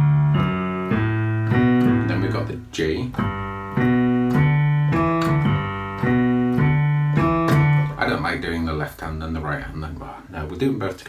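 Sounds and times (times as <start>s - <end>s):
rock and roll piano: 0.0s - 9.8s.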